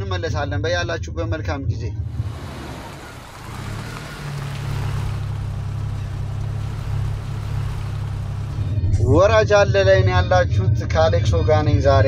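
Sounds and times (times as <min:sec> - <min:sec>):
car engine running: 0:02.0 - 0:09.3.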